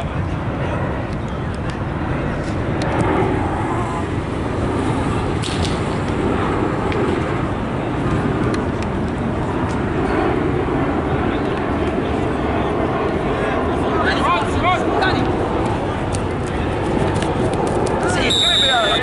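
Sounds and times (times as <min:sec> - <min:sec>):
faint distant voices: 0:00.0 - 0:04.3, 0:06.5 - 0:19.0
low outdoor rumble: 0:00.0 - 0:19.0.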